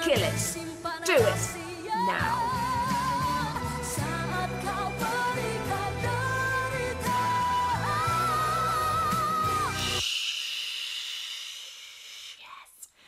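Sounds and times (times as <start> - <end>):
woman singing pop ballad: 0.0 - 10.0.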